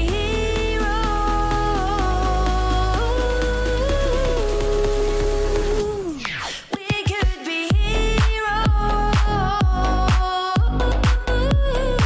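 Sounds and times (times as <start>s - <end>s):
low bass: 0.0s - 6.2s, 7.7s - 12.0s.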